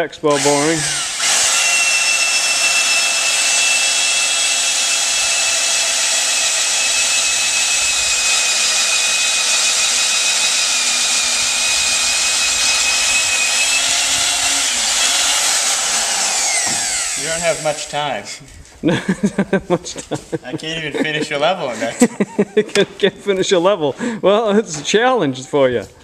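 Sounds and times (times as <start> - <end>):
drill bit cutting timber: 0.0 - 18.1
electric drill motor whine: 0.3 - 17.9.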